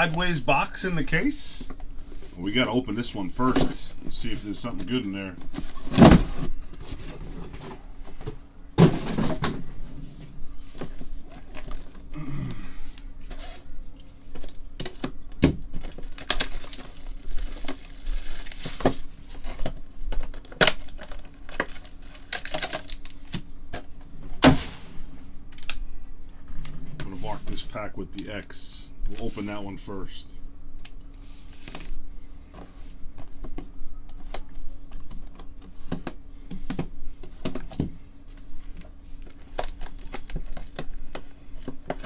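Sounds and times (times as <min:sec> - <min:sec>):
cardboard and foil rustling: 0:10.6 - 0:12.1, 0:15.7 - 0:23.4, 0:38.3 - 0:42.0.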